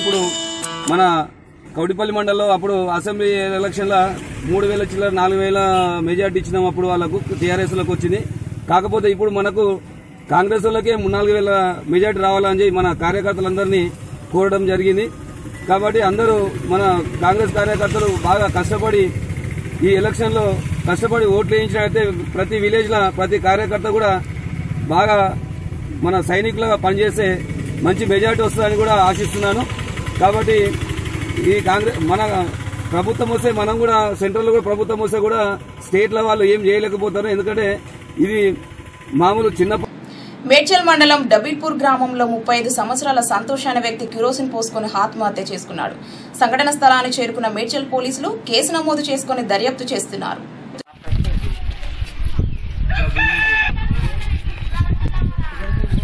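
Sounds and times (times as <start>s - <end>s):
man speaking: 0.0s - 19.2s
engine rumbling: 0.9s - 40.4s
rooster crowing: 52.9s - 54.3s.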